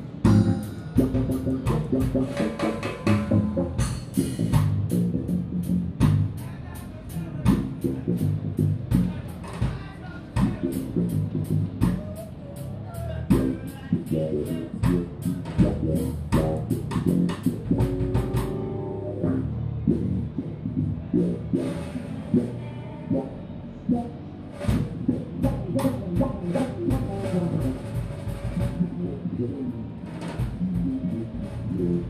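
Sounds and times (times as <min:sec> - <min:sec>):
drum kit playing: 0:00.0 - 0:23.3, 0:23.9 - 0:32.0
electric bass playing: 0:00.0 - 0:32.0.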